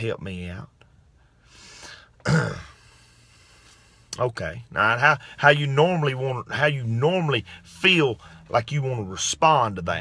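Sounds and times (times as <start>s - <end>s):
man clearing his throat: 2.2s - 2.8s.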